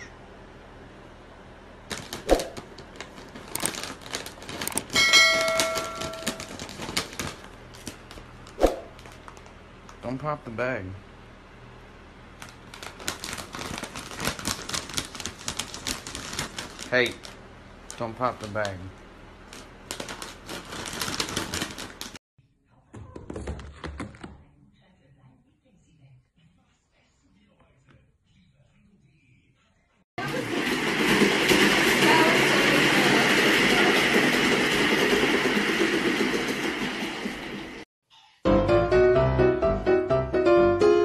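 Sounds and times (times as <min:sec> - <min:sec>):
foil bag crinkling: 0:01.8 - 0:10.0, 0:12.4 - 0:22.2.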